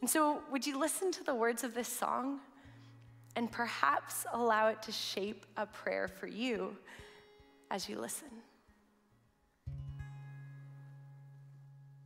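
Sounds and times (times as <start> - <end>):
acoustic guitar chord strummed: 8.7 - 12.0.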